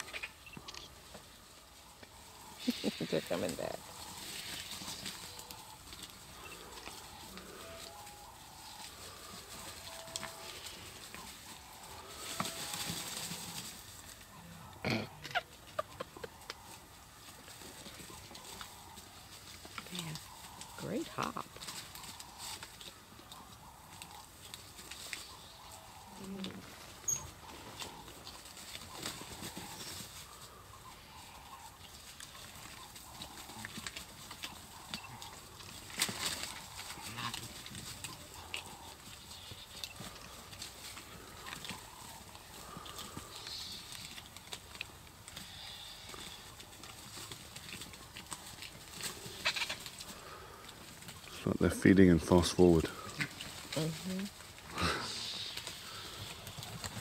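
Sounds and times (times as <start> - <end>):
birds pecking and tearing meat: 0.0 - 57.0
vulture calls: 0.0 - 57.0.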